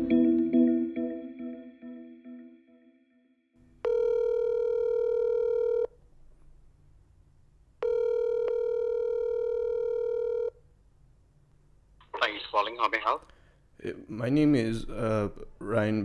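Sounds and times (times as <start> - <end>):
telephone ringback tone: 3.8 - 5.9, 7.8 - 10.5.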